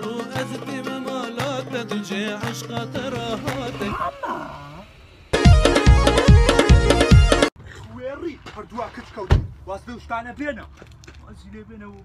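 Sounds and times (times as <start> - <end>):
man calling out: 3.4 - 4.8
loud music with bass drum: 5.4 - 7.5.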